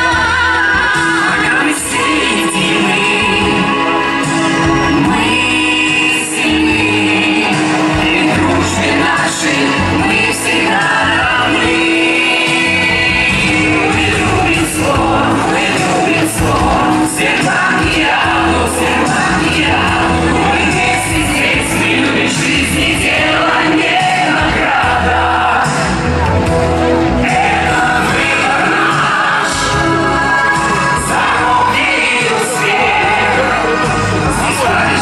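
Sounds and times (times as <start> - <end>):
man and women singing pop song: 0.0 - 26.2, 27.2 - 35.0.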